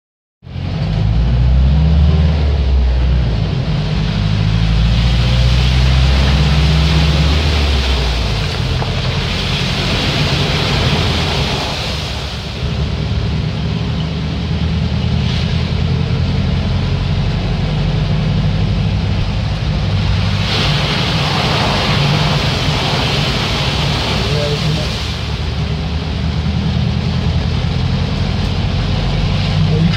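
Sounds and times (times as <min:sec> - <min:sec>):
vehicle engine running: 0:00.4 - 0:29.9
water spraying from wheels: 0:00.5 - 0:29.9
heavy rain on windscreen: 0:02.6 - 0:29.9.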